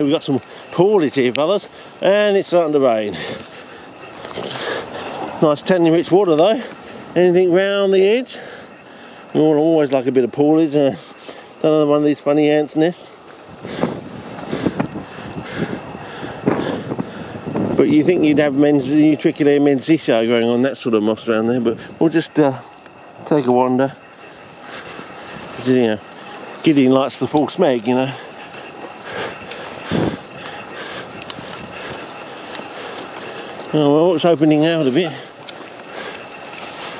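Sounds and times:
footsteps through dry scrub: 0.0s - 36.9s
small crackles and ticks: 0.0s - 36.9s
wind gusting on microphone: 12.0s - 36.8s
twigs brushing against clothing: 24.1s - 36.9s.

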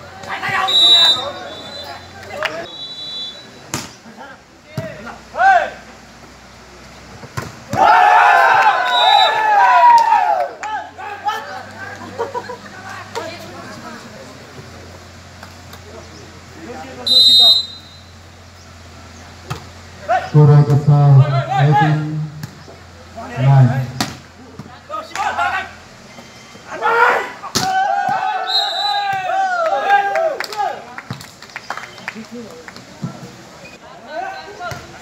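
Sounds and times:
people shouting: 0.2s - 2.7s, 7.7s - 11.6s, 25.0s - 25.8s, 26.7s - 30.8s
short high whistle blast: 0.7s - 2.0s, 2.7s - 3.5s, 17.1s - 18.1s.

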